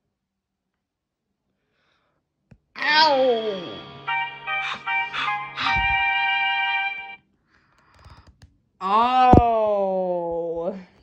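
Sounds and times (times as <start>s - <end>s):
game music jingle: 2.8s - 7.2s.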